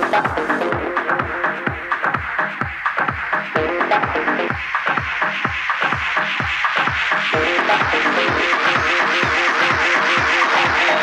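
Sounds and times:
kick drum: 0.0 - 11.0
staccato synth riff: 0.0 - 11.0.

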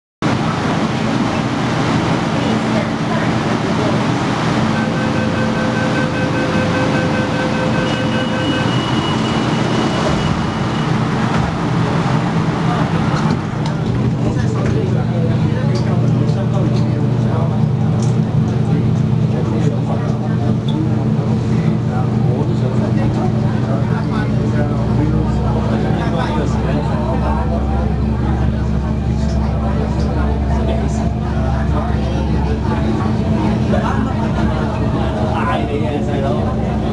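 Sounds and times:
train running hum: 0.2 - 36.9
steady high tones: 4.4 - 11.0.

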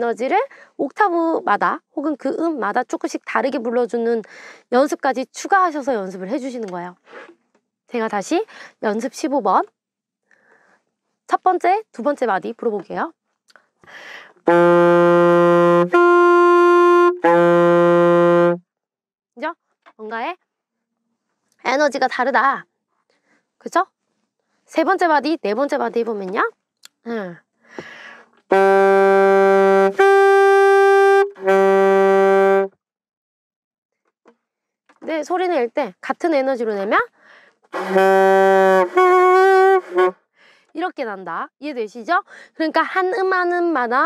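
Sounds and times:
quick breath: 4.3 - 4.7, 10.3 - 10.9, 13.8 - 14.4, 27.6 - 28.4, 37.2 - 37.7, 40.3 - 40.7
alto saxophone long tones: 14.4 - 18.6, 28.5 - 32.7, 37.8 - 40.2.

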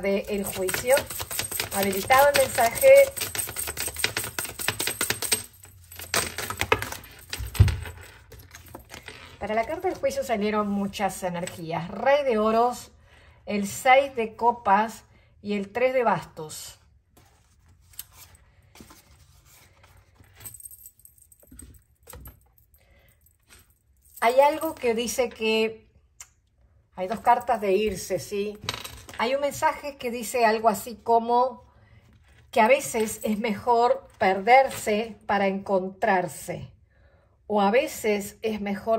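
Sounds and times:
cards being shuffled: 0.3 - 10.1, 17.2 - 20.4.

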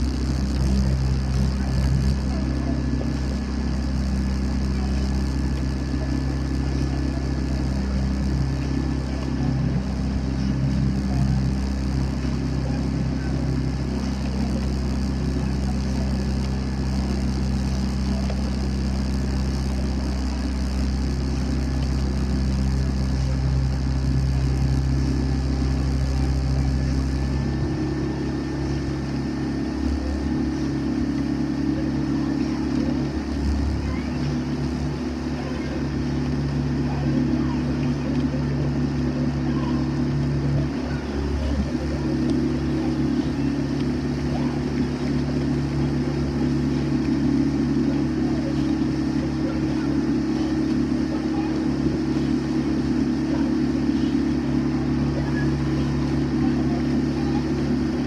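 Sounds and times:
outboard motor running: 0.0 - 58.0.

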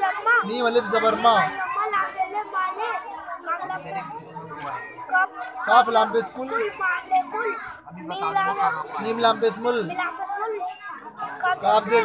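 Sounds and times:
child reciting letter names: 9.9 - 11.6.

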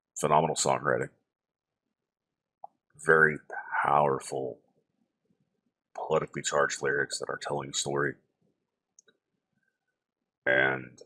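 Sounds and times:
man's voice: 0.2 - 1.1, 3.1 - 4.5, 6.0 - 8.1, 10.5 - 11.0.

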